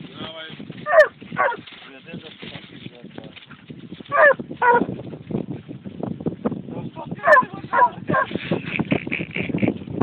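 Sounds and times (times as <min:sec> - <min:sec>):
dog barking: 0:00.9 - 0:01.6, 0:04.1 - 0:04.8, 0:07.2 - 0:08.3.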